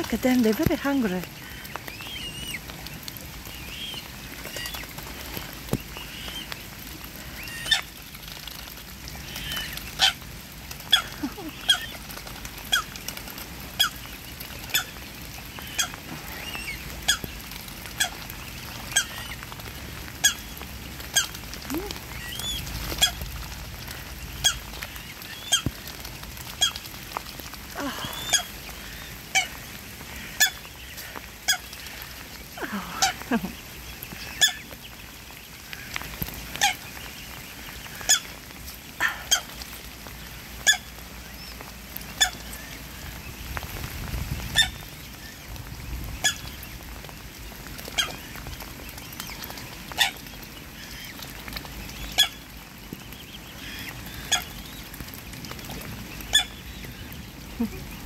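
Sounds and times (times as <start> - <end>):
swan calls: 0.1 - 8.1, 8.7 - 39.8, 40.5 - 41.0, 42.0 - 43.1, 44.5 - 45.4, 46.1 - 46.6, 47.8 - 52.5, 53.4 - 58.0.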